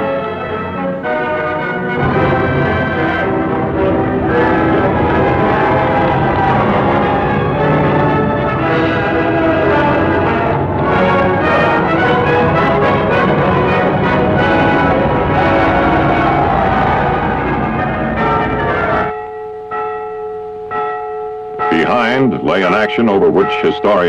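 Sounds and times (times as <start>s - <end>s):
church bells ringing: 0.0s - 24.0s.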